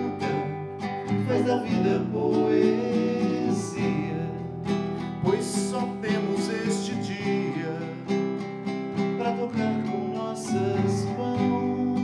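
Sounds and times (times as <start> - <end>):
man singing: 0.0 - 8.3, 9.0 - 12.0
classical guitar strummed: 0.0 - 12.0.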